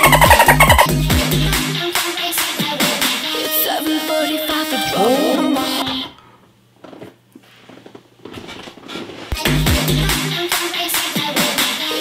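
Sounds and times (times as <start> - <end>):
electronic dance-pop music: 0.0 - 6.1, 9.3 - 12.0.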